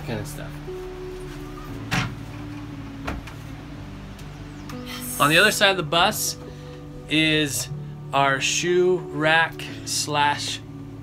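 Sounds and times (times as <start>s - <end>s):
wooden bench seat knocking shut: 3.0s - 3.4s.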